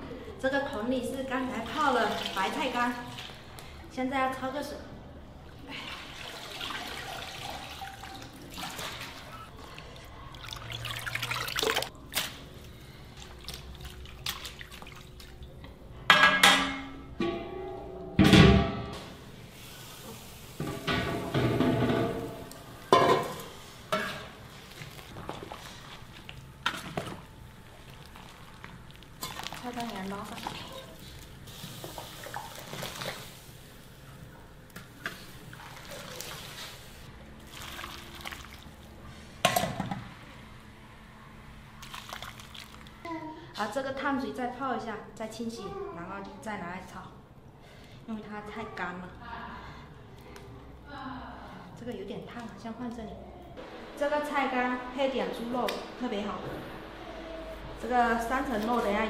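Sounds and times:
water dripping and splashing: 1.5s - 3.7s, 5.8s - 12.4s, 13.0s - 15.8s, 24.4s - 33.4s, 34.7s - 39.0s, 41.8s - 43.0s.

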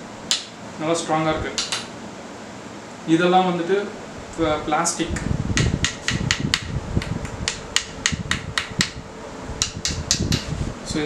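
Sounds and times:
steady low rumble: 4.0s - 11.0s.

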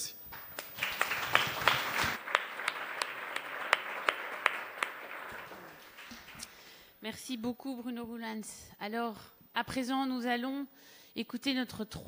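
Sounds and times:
sharp single claps: 0.0s - 6.7s
audience applauding: 0.0s - 7.0s.

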